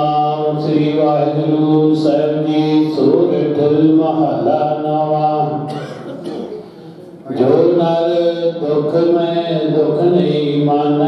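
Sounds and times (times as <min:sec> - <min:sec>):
devotional chanting over microphone: 0:00.0 - 0:11.0.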